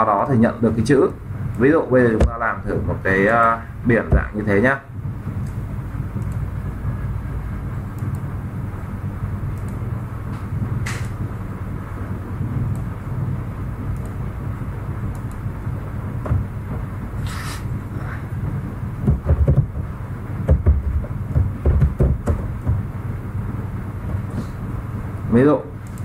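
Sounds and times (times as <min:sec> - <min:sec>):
low background rumble: 0:00.0 - 0:26.0
faint clicks: 0:09.5 - 0:09.8, 0:14.0 - 0:14.2.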